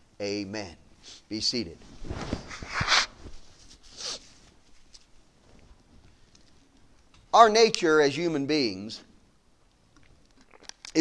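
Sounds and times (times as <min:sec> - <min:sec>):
man blowing nose: 0:03.8 - 0:04.3.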